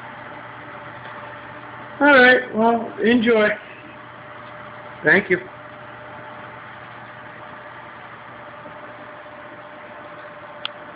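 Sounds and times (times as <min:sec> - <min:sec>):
aquarium equipment humming: 0:00.0 - 0:10.9
constant mid-pitched tone: 0:00.0 - 0:10.9.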